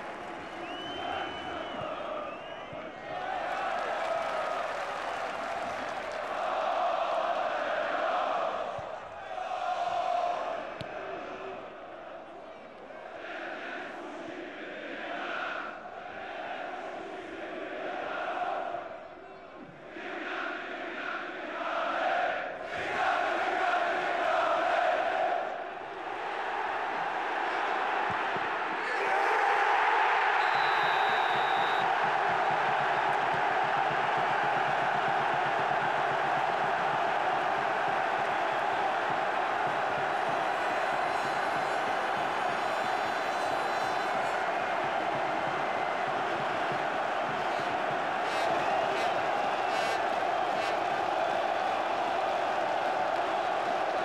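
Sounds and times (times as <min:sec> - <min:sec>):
crowd roar of cheering: 0:00.0 - 0:11.7, 0:21.5 - 0:54.0
crowd chanting and singing: 0:00.0 - 0:54.0.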